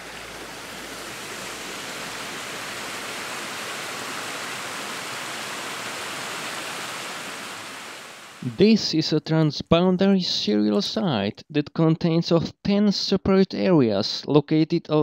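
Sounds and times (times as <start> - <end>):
stream rushing over rocks: 0.0 - 8.5.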